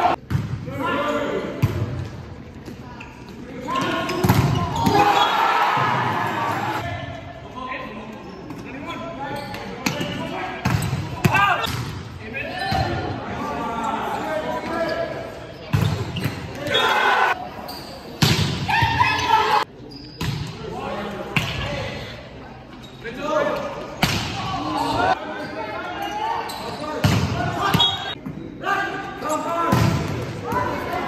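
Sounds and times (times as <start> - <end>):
people shouting: 4.7 - 6.8.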